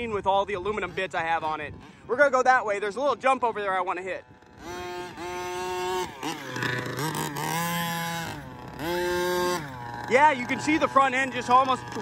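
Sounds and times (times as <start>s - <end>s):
two-stroke engine revving: 0.0s - 12.0s.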